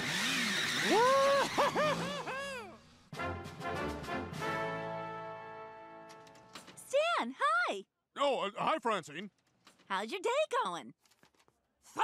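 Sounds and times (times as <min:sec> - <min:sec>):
motor scooter engine revving: 0:00.0 - 0:02.3.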